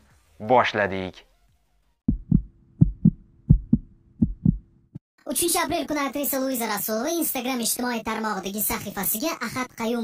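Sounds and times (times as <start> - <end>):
heartbeat double thumps: 2.1 - 4.8.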